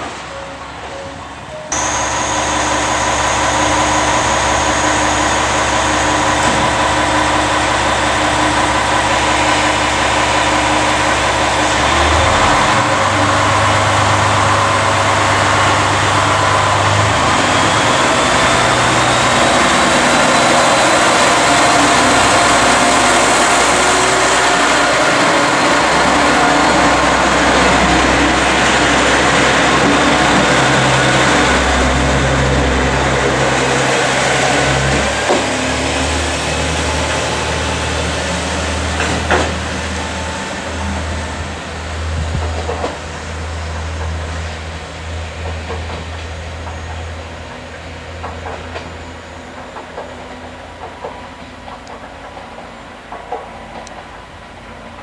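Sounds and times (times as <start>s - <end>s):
diesel railcar engine: 0.0s - 55.0s.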